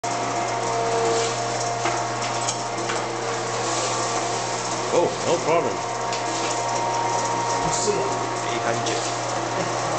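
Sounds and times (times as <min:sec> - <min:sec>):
dough moulder motor hum: 0:00.0 - 0:09.9.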